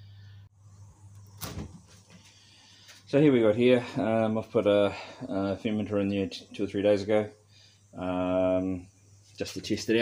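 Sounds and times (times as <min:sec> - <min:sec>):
low background hiss: 0:00.2 - 0:10.0.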